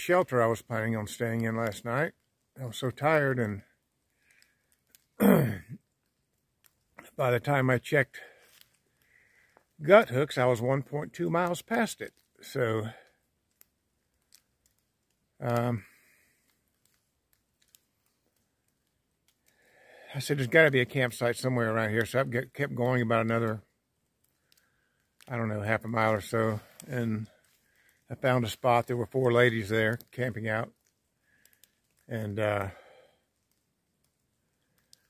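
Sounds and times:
faint clicks: 3.5 - 7.2, 8.4 - 9.8, 11.4 - 21.1, 21.8 - 28.9, 29.8 - 35.0
man clearing his throat: 5.2 - 5.8.

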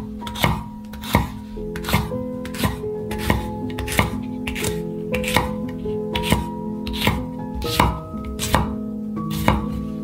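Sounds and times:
background music: 0.0 - 10.0
knife chopping on cutting board: 0.2 - 10.0.

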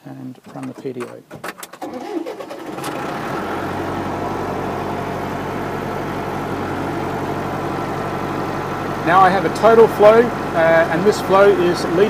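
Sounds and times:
tractor engine starting and idling: 0.2 - 12.0.

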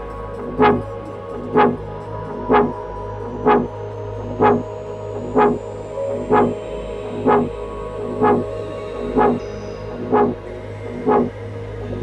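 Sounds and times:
low electronic drone: 0.0 - 12.0
electronic hit pulsing: 0.4 - 0.8, 1.4 - 1.8, 2.4 - 2.8, 3.4 - 3.7, 4.3 - 7.5, 8.1 - 8.5, 9.1 - 9.4, 10.0 - 10.4, 11.0 - 11.3
high rising synth: 0.4 - 11.3.

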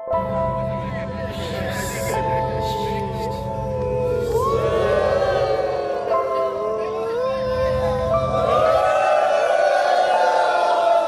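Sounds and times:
crowd cheering: 0.8 - 11.0.

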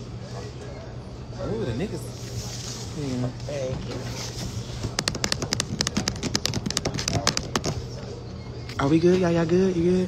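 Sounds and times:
rapid sharp clicks and taps: 4.9 - 7.8.

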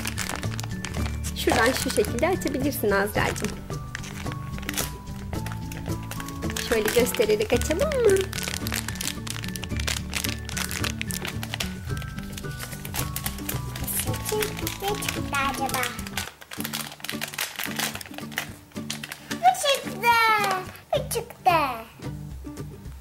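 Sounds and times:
foil wrapper crinkling: 0.0 - 20.9
background music with beat: 21.9 - 23.0.

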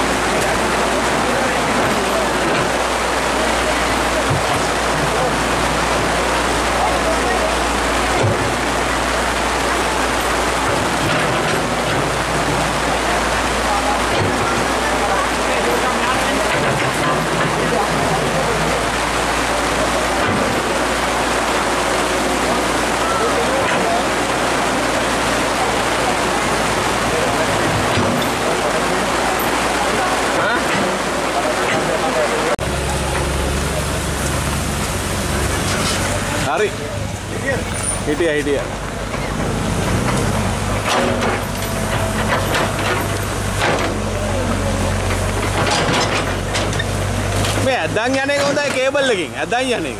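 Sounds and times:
heavy rain pouring: 0.0 - 49.9
truck diesel engine running: 0.0 - 49.9
voices calling out: 0.0 - 49.9.

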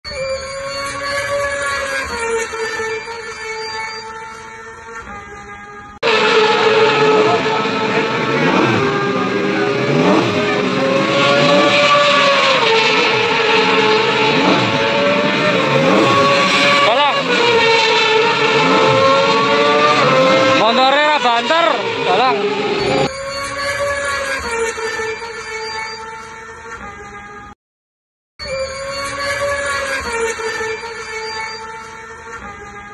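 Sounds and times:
racing motorcycle engines revving: 0.2 - 5.1, 6.0 - 26.9, 28.5 - 32.9.

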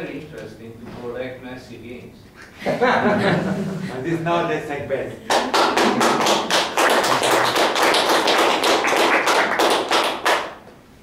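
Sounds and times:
audience applauding: 5.3 - 10.6.

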